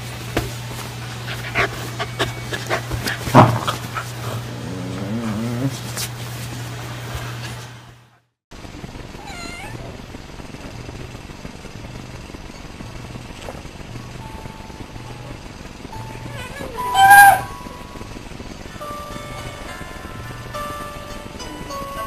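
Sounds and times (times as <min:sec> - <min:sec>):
cat meowing: 0:09.2 - 0:10.0.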